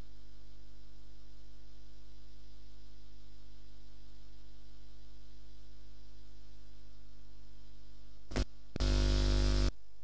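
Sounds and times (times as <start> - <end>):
electrical mains hum: 0.0 - 10.0
electrical buzz: 8.2 - 9.7.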